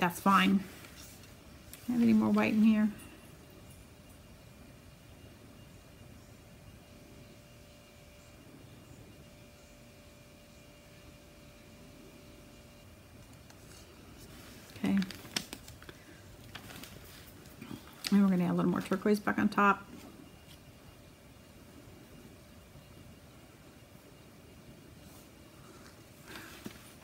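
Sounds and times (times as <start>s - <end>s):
faint steady hum: 0.0s - 27.0s.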